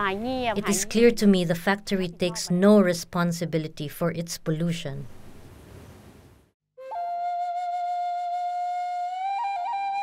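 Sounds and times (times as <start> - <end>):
steady background hiss: 0.0 - 6.6.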